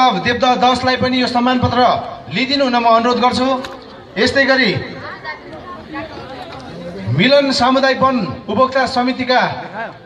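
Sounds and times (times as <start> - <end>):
background chatter of people: 0.0 - 10.0.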